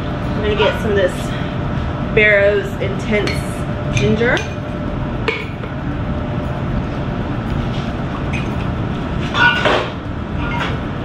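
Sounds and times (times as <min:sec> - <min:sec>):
low background rumble: 0:00.0 - 0:11.0
glass bottles and shaker clinking: 0:08.3 - 0:08.7.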